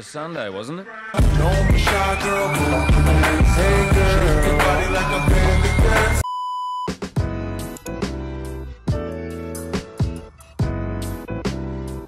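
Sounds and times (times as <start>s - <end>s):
intro music with held chords: 1.2s - 6.2s
electronic censor beep: 6.2s - 6.9s.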